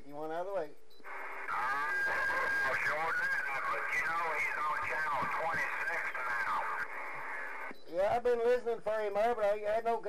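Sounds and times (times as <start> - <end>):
radio static hiss: 0.0 - 10.0
garbled voice over radio speaker: 1.2 - 7.7.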